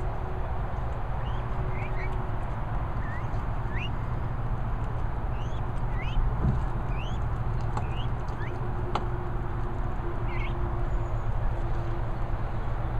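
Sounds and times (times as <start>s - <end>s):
chicks peeping: 1.2s - 2.2s, 3.0s - 3.9s, 5.3s - 6.2s, 6.9s - 8.6s, 10.3s - 10.6s.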